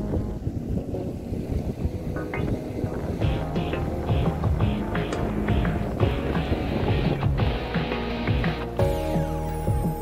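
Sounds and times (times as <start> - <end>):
wind buffeting microphone: 0.0 - 8.8
background music: 0.0 - 10.0.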